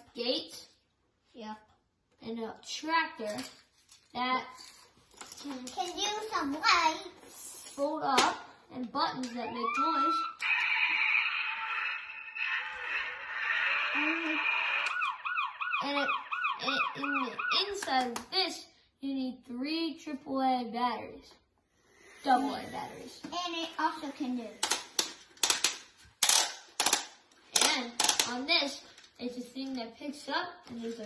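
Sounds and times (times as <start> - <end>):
plastic toy parts clattering: 3.2 - 6.2, 24.6 - 29.8
tinny toy sound effect: 9.3 - 17.7.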